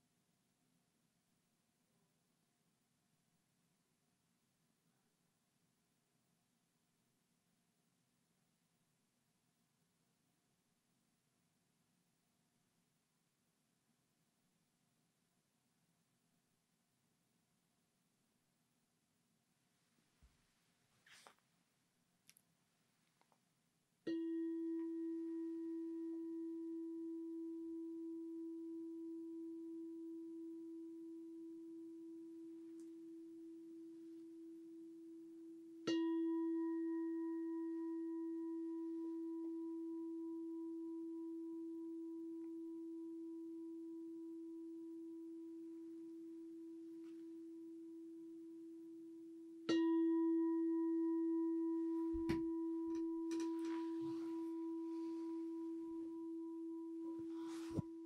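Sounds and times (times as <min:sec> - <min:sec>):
singing bowl bell ringing: 0:24.1 - 0:45.6, 0:49.7 - 0:58.0.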